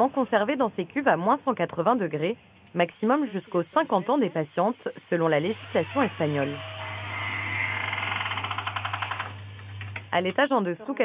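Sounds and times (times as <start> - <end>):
vapour hissing with rattling pulse: 6.9 - 9.4.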